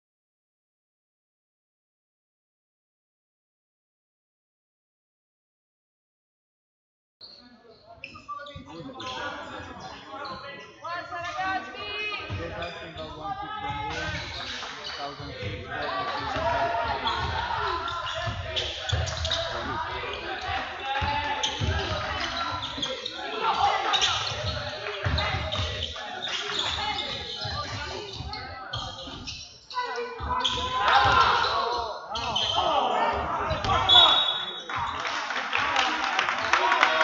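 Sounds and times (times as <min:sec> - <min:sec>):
people shouting: 0:29.8 - 0:34.2.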